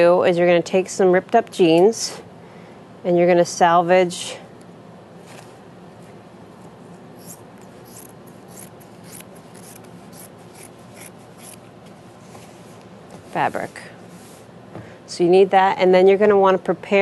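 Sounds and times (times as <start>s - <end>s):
scissors snipping denim: 7.2s - 11.6s.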